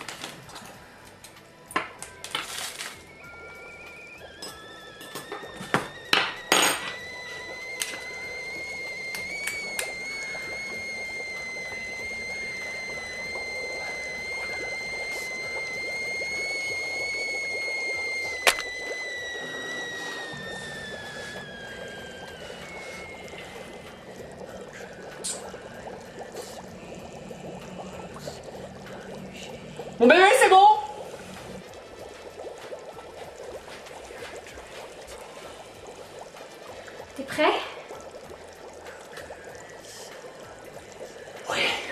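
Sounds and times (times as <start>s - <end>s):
liquid pouring into container: 0.0s - 41.9s
high ringing tone: 2.2s - 26.1s.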